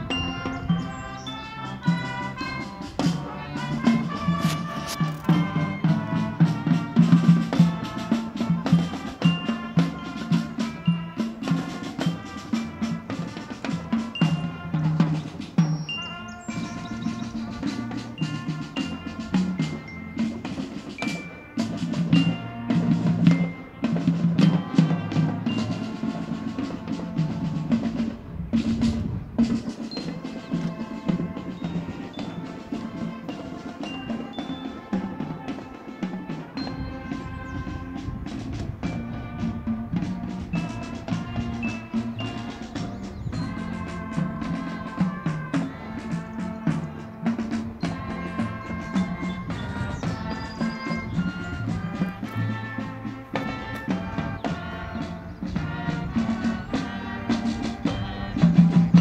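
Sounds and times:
marching band playing: 0.0s - 59.0s.

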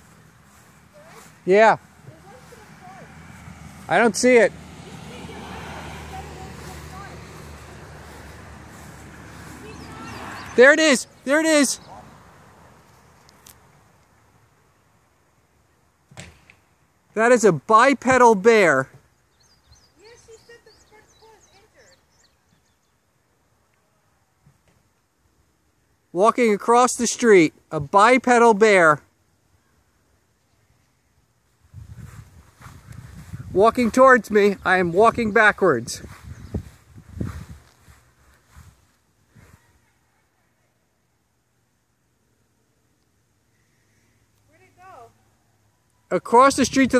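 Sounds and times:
soft footsteps with rustle: 0.0s - 3.9s, 6.2s - 10.6s, 30.4s - 39.7s.

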